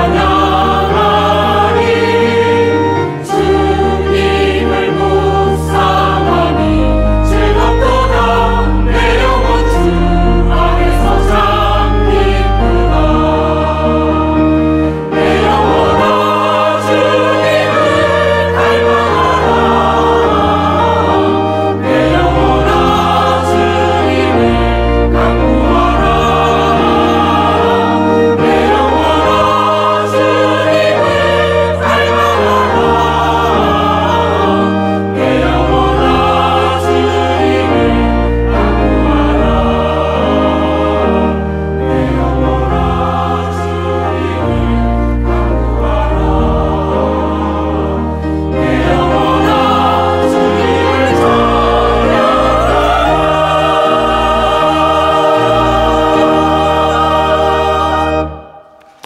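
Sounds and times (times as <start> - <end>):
mixed choir singing a hymn: 0.0 - 59.0
low bass accompaniment: 2.4 - 17.1.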